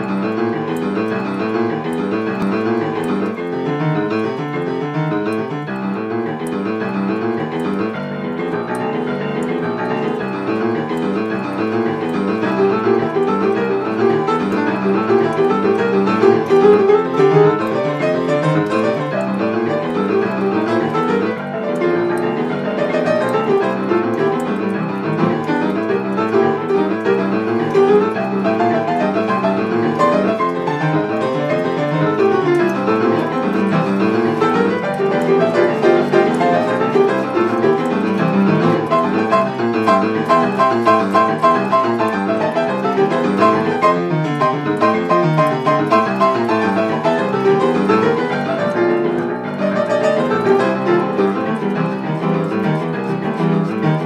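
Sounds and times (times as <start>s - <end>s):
boogie-woogie piano: 0.0s - 54.0s.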